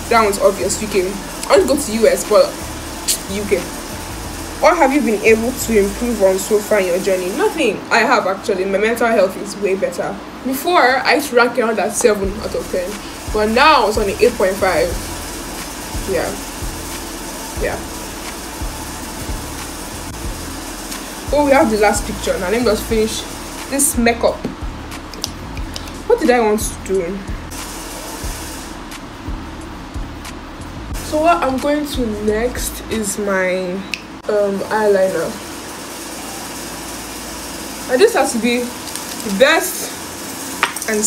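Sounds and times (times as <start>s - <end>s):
room noise hum: 0.0s - 41.0s.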